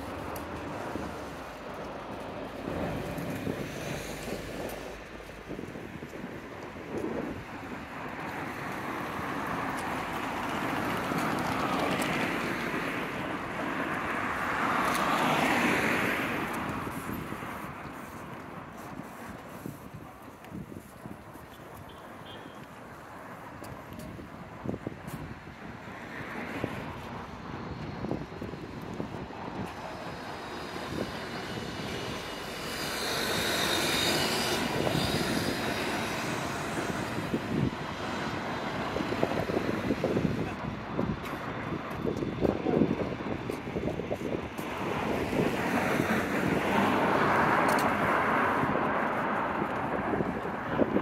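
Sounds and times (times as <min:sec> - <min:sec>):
motor vehicles passing: 0:22.6 - 0:51.0.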